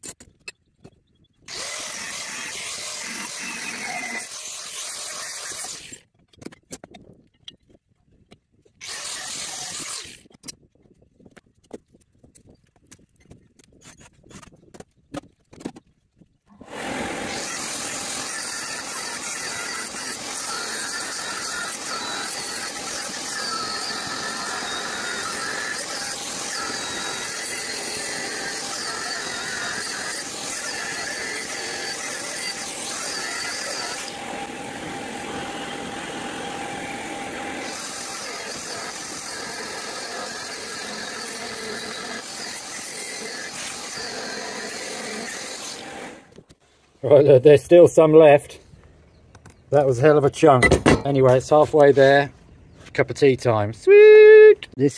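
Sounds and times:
angle grinder grinding steel: 1.5 - 6.0, 8.8 - 10.2, 16.6 - 46.3.

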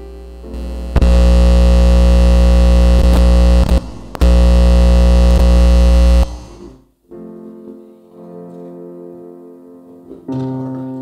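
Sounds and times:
electrical buzz through sound system: 0.0 - 7.0.

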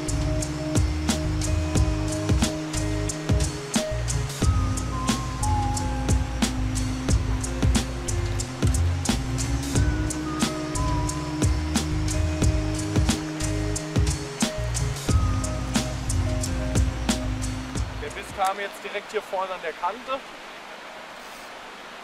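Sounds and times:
background music with beat: 0.0 - 18.4.

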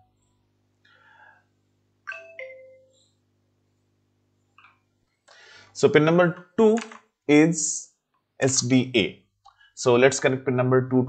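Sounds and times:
two-note electronic chime: 2.1 - 3.1.

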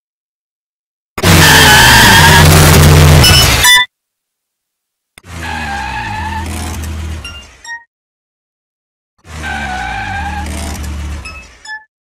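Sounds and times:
tires squealing: 1.2 - 3.8, 5.2 - 7.5, 9.2 - 11.8.

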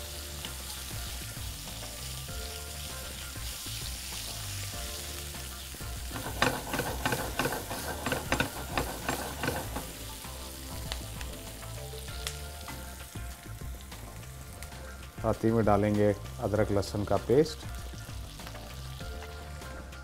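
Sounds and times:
onions sizzling in hot fat: 0.0 - 20.0
spatula stirring and scraping: 6.0 - 10.1.

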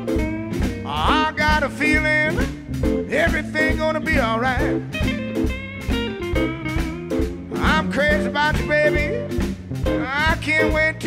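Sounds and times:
bass guitar: 0.0 - 11.0
drums steady beat: 0.0 - 11.0
lead instrument bending notes: 0.0 - 11.0.

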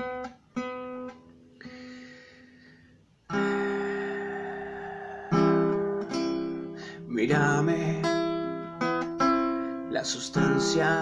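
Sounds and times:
acoustic guitar strumming: 0.0 - 2.0, 3.3 - 11.0.

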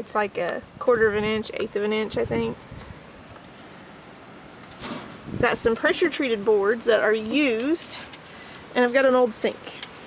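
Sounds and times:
wind on microphone: 0.7 - 3.1, 4.8 - 5.9.

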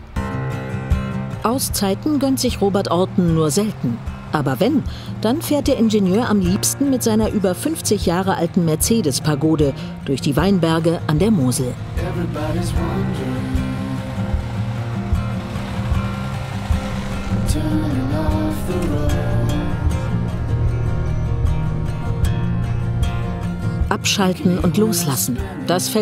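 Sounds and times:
background music with held tones: 0.0 - 26.0.

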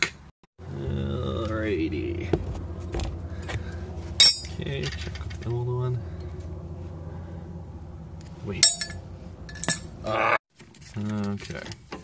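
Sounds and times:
steady low hum: 0.6 - 10.4.

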